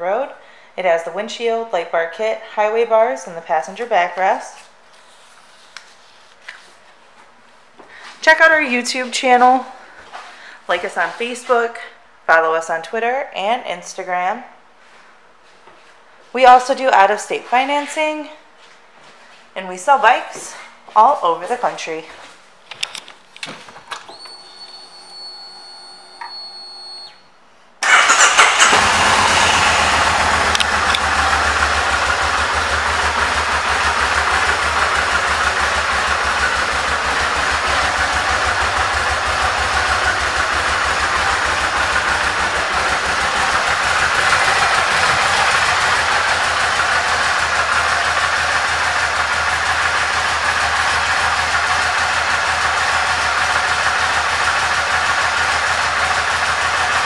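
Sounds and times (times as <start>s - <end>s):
motorcycle engine starting: 27.8s - 57.0s
motorcycle engine idling: 28.7s - 57.0s.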